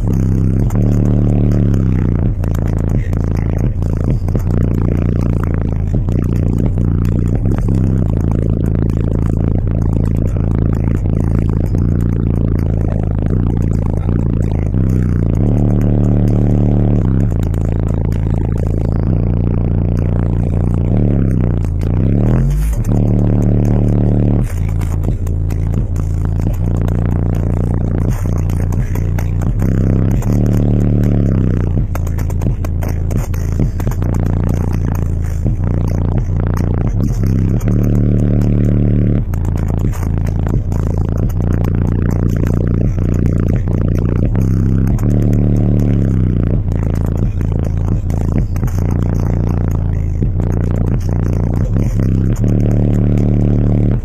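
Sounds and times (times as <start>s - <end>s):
bass-heavy music through subwoofers: 0.0s - 54.0s.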